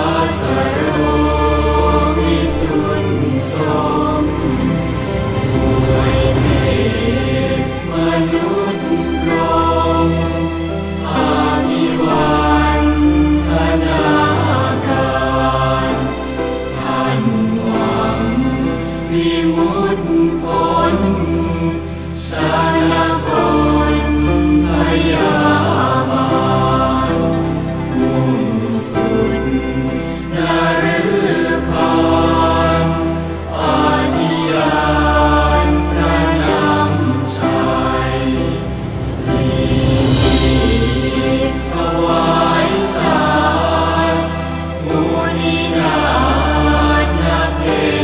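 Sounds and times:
devotional chant singing: 0:00.0 - 0:48.0
musical accompaniment: 0:00.0 - 0:48.0
steady low bass: 0:37.7 - 0:42.8.

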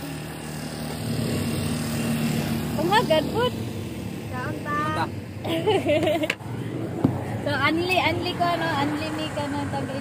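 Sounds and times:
people talking: 0:02.8 - 0:03.6, 0:04.3 - 0:05.9, 0:07.4 - 0:10.0.

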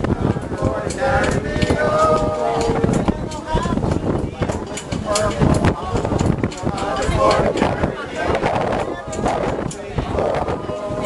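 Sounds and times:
people talking and calling out: 0:00.0 - 0:11.0
wind noise on microphone: 0:00.0 - 0:11.0.

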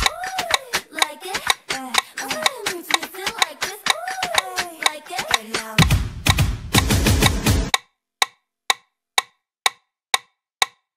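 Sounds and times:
metronome click track ticking: 0:00.0 - 0:10.9
pop music with heavy bass: 0:05.4 - 0:07.7.

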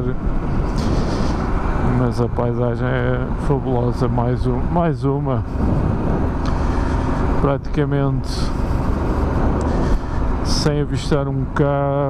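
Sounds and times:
wind rush on microphone: 0:00.0 - 0:12.0.

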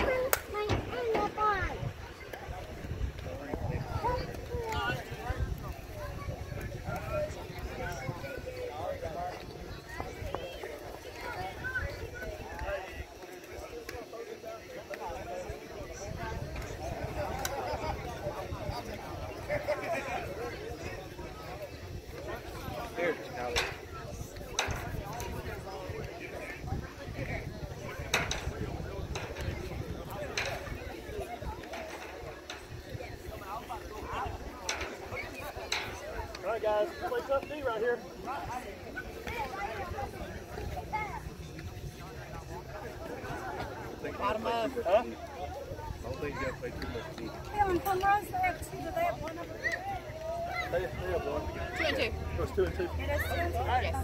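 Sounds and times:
wind on microphone: 0:00.0 - 0:12.7, 0:23.6 - 0:36.4
distant people talking: 0:00.0 - 0:54.0.

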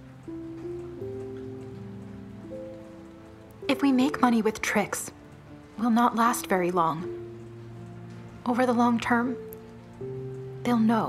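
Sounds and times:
soft sustained background music: 0:00.0 - 0:11.0.

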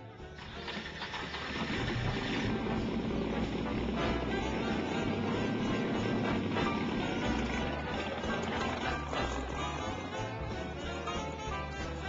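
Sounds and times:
background music: 0:00.0 - 0:12.0
race car engine running: 0:00.4 - 0:12.0.

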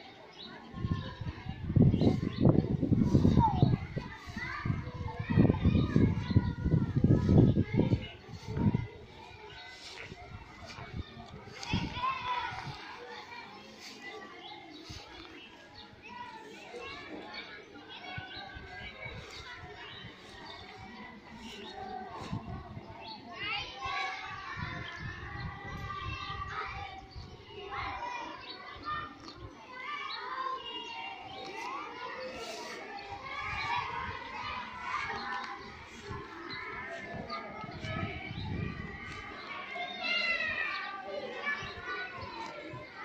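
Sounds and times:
distant children's voices: 0:00.0 - 0:43.0.

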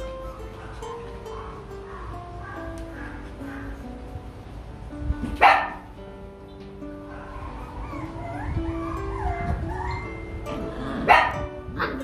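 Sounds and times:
puppy whining: 0:00.0 - 0:03.8, 0:07.0 - 0:12.0
puppy yelping: 0:00.1 - 0:03.8, 0:07.0 - 0:12.0
background music: 0:00.2 - 0:12.0.

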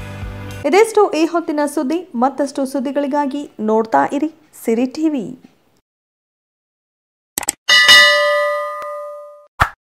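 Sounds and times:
bell chime sound effect: 0:07.7 - 0:09.5.

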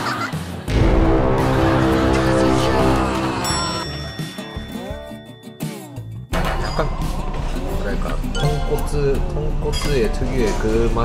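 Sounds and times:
loud music with sustained notes: 0:00.3 - 0:04.4.

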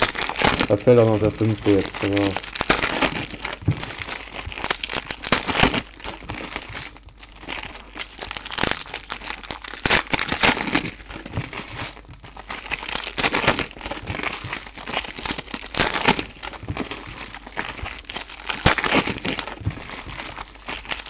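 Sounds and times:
foil wrappers crinkling: 0:00.0 - 0:21.0.

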